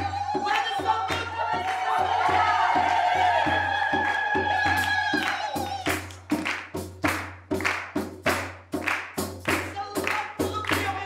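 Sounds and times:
women singing: 0.0s - 6.1s, 9.8s - 11.0s
women clapping in unison: 0.3s - 11.0s.

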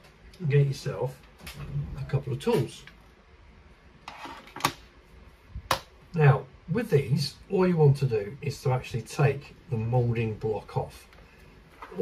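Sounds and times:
tool case scraping on a mat: 4.1s - 4.6s.

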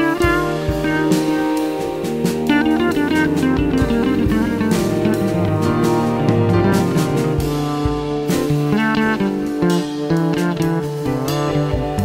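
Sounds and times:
drum kit beat: 0.0s - 12.0s
guitar-led instrumental music: 0.0s - 12.0s.

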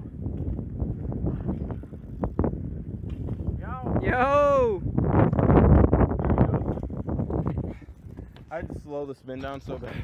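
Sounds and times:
wind rumbling on microphone: 0.0s - 10.0s
bike landing on concrete: 2.9s - 3.6s
person shouting: 4.0s - 4.8s.

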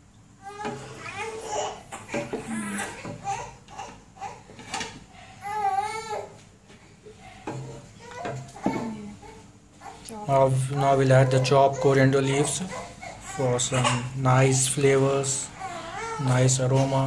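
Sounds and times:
young child babbling: 0.4s - 3.6s.

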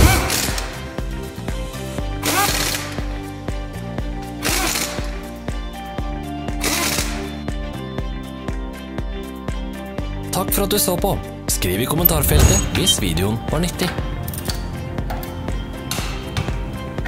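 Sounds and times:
background music with beat: 0.0s - 17.0s
impact wrench rattling: 4.4s - 5.1s, 6.6s - 7.2s.

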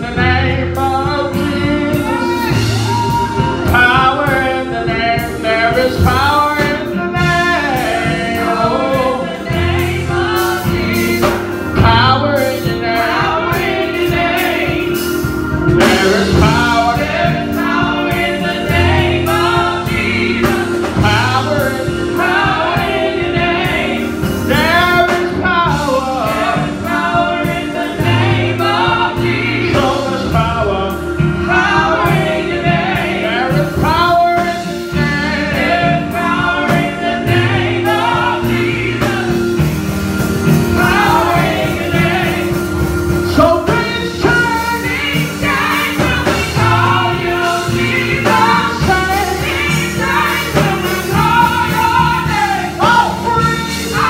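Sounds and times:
sustained low backing notes: 0.0s - 54.0s
women's vocal group singing gospel: 0.0s - 54.0s.

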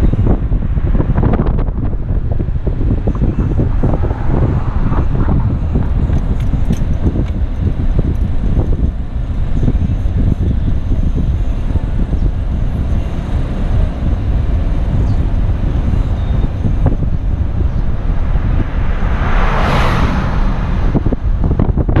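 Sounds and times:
car driving slowly: 0.0s - 22.0s
wind buffeting microphone: 0.0s - 22.0s.

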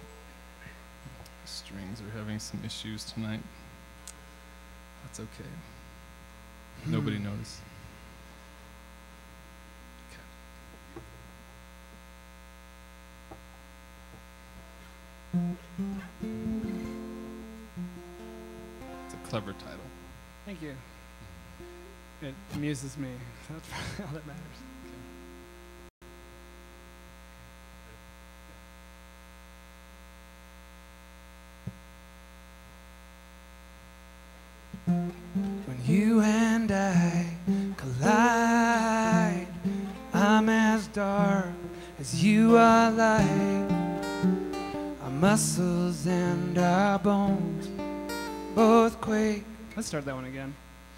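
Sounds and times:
electrical mains hum: 0.0s - 50.9s
faint click: 4.0s - 4.2s.

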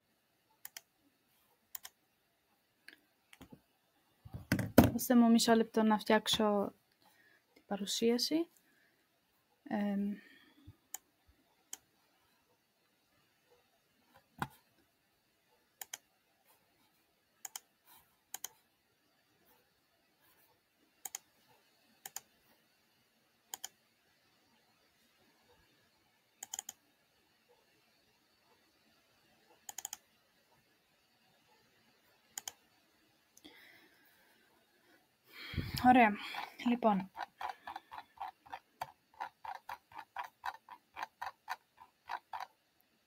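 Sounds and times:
computer mouse clicks: 0.6s - 0.9s, 1.7s - 2.0s, 10.9s - 11.1s, 11.7s - 11.9s, 15.8s - 16.1s, 17.4s - 17.7s, 18.3s - 18.6s, 21.0s - 22.4s, 23.5s - 23.8s, 26.4s - 26.9s, 29.5s - 30.2s, 32.3s - 32.7s, 36.4s - 42.5s
light computer clicks: 23.5s - 23.8s, 26.4s - 26.8s, 29.6s - 30.0s, 32.4s - 32.6s.

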